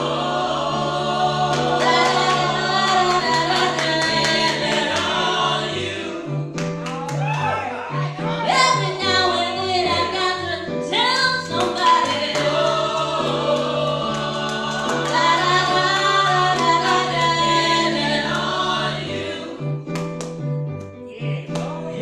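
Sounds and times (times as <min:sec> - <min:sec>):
group singing gospel song: 0:00.0 - 0:06.9, 0:08.0 - 0:20.0, 0:21.6 - 0:22.0.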